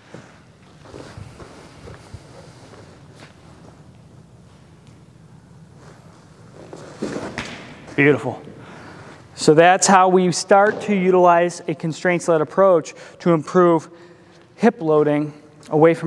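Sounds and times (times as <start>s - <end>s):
footsteps shuffling on mound: 0.0s - 3.9s
pitcher striding and throwing: 5.8s - 8.0s.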